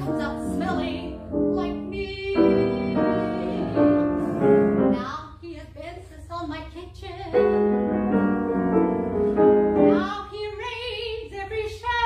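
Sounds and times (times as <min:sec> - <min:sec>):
piano accompaniment: 0:00.0 - 0:05.1, 0:07.3 - 0:11.0
soprano singing: 0:00.0 - 0:12.0.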